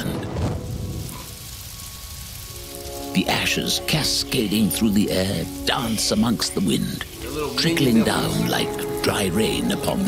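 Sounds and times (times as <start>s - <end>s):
hissing rush of flames: 0.0s - 9.1s
soft background music: 0.0s - 10.0s.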